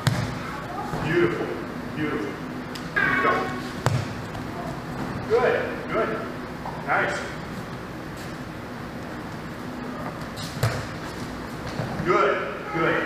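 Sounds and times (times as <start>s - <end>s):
indistinct voices: 0.4s - 3.8s.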